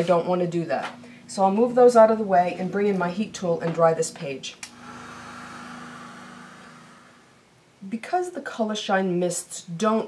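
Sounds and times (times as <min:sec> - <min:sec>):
heat tool fan hum: 0:00.0 - 0:10.0.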